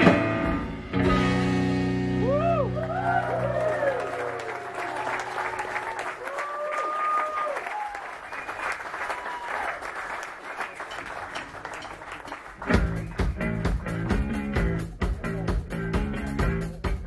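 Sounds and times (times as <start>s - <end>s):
audience applauding and cheering: 2.2s - 14.1s.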